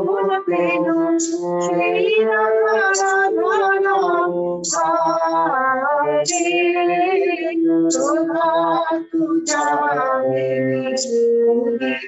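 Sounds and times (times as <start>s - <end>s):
low musical accompaniment: 0.0s - 12.0s
woman singing long held notes: 0.0s - 12.0s.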